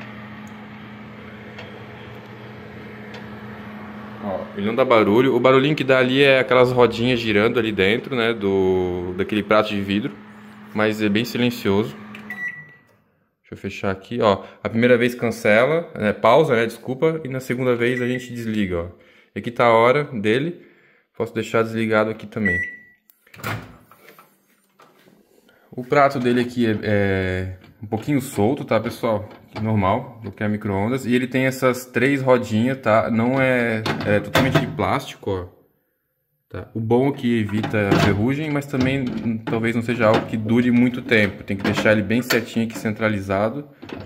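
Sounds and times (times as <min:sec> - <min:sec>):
microwave oven humming: 0:00.0 - 0:13.0.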